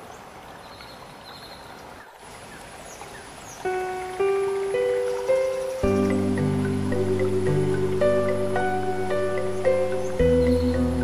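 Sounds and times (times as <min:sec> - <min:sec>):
flowing water rushing: 0:00.0 - 0:11.0
background music: 0:03.7 - 0:11.0.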